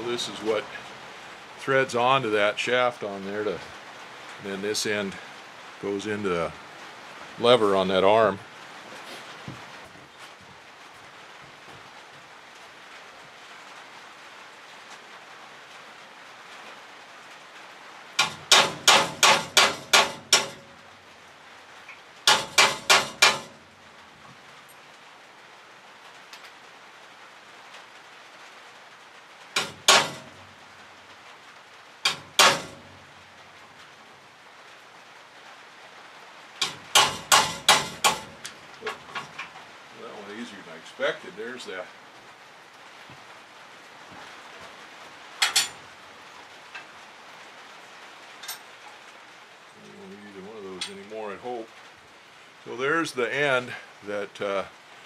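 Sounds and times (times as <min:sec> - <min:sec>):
hammer striking steel: 0:18.2 - 0:20.7, 0:22.3 - 0:23.6, 0:29.6 - 0:30.4, 0:32.0 - 0:32.9, 0:36.6 - 0:38.6.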